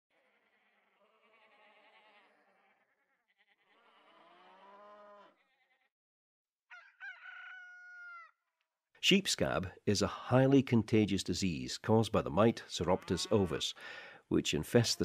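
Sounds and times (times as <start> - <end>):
sheep bleating: 0.1 - 5.9, 12.7 - 13.8
rooster crowing: 6.7 - 8.4.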